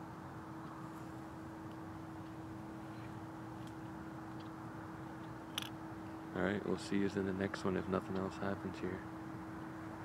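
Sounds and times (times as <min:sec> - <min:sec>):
faint steady hum: 0:00.0 - 0:10.0
steady low hiss: 0:00.0 - 0:10.0.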